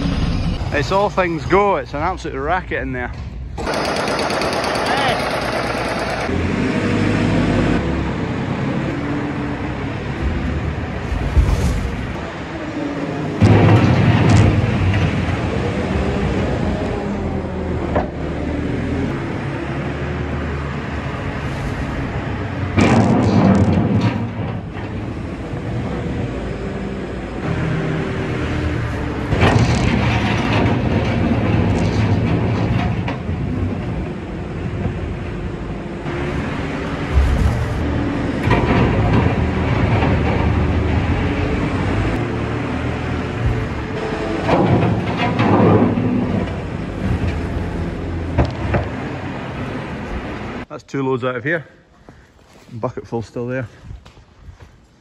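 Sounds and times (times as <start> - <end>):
farm machine engine running: 3.5 - 7.8, 35.4 - 50.6.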